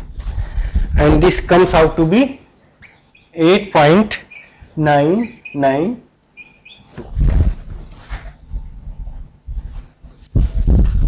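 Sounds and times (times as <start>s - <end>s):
low thuds and rubbing: 6.9s - 11.0s.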